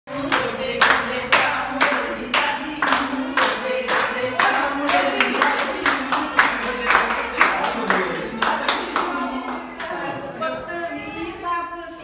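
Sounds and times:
women clapping in a steady beat: 0.1s - 10.0s
women singing: 0.1s - 12.0s.

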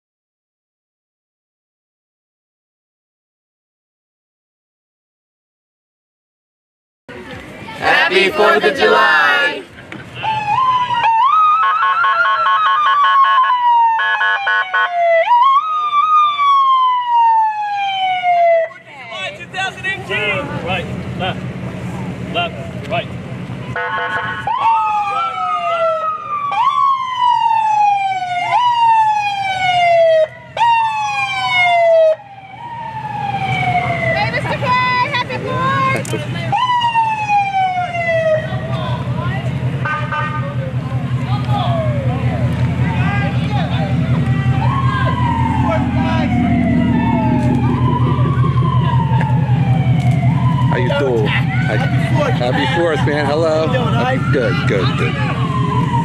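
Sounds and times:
low engine rumble: 7.1s - 11.3s, 15.4s - 56.0s
emergency siren wailing: 10.2s - 19.3s, 23.6s - 56.0s.

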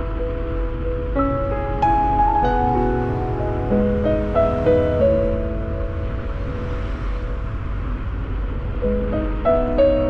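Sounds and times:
low rumble with hiss: 0.0s - 10.0s.

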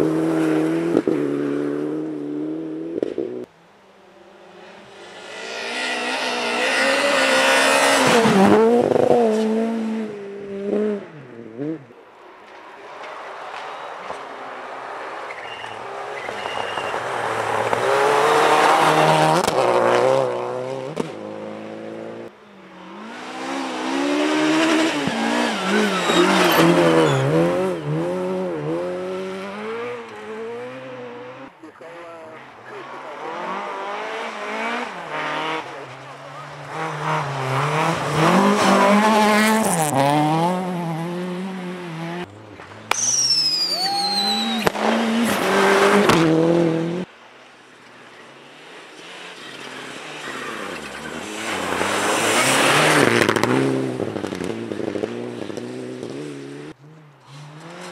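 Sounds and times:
rally car engines at full throttle: 0.0s - 57.9s.

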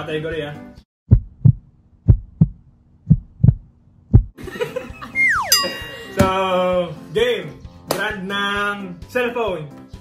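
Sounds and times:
heartbeat thumps: 1.1s - 4.4s.

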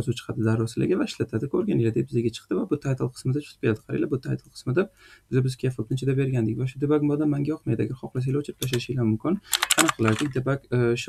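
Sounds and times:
computer keyboard typing: 9.5s - 10.4s.

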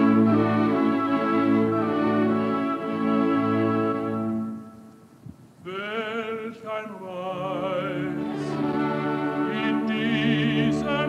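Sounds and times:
orchestral chord: 0.0s - 4.8s, 7.6s - 11.0s
operatic voice singing with vibrato: 5.7s - 11.0s.

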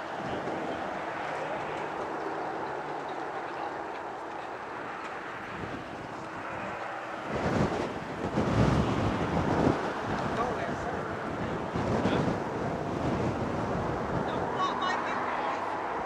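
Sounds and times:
distant boat engine drone: 0.0s - 16.0s
wind buffeting microphone: 0.0s - 16.0s.

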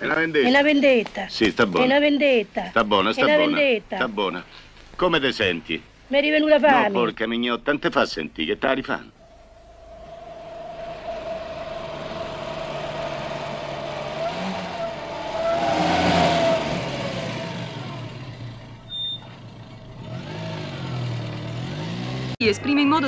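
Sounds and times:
steady whine: 9.1s - 18.9s
motor vehicle running: 9.2s - 22.4s.

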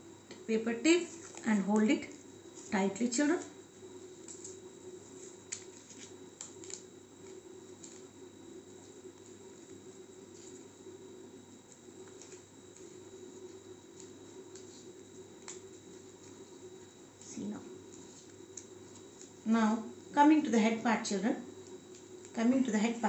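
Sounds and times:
steady low hum: 0.0s - 23.0s
paper crinkling: 0.9s - 20.1s, 21.5s - 23.0s
small clicks and crackles: 1.0s - 20.1s, 21.5s - 23.0s.

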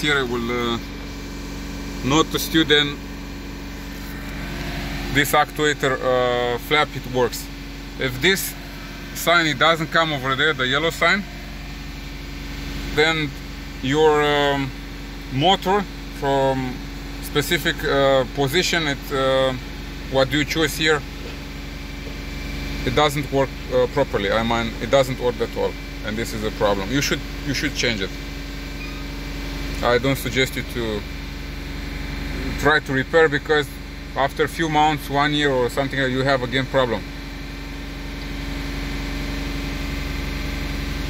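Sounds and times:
car engine droning at raised speed: 0.0s - 41.0s.

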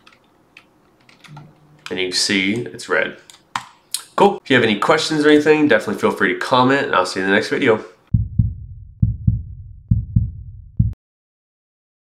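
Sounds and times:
deep bass thumps: 8.1s - 11.0s.

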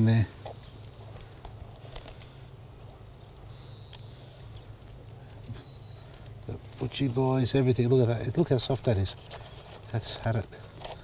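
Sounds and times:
steady low hum: 0.0s - 11.0s
stick probing wet rotted wood: 0.0s - 11.0s.

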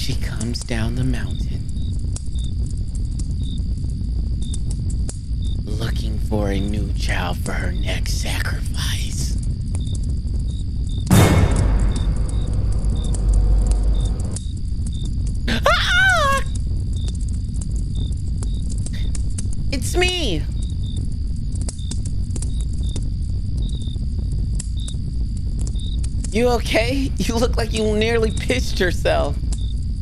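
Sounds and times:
crickets chirping: 0.0s - 30.0s
steady low rumble: 0.0s - 30.0s.

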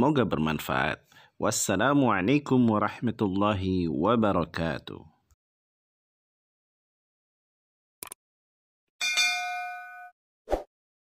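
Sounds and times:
notification bell ding: 9.0s - 10.2s.

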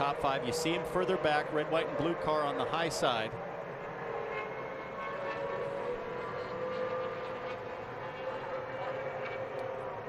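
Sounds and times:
race car engines whining: 0.0s - 10.0s.

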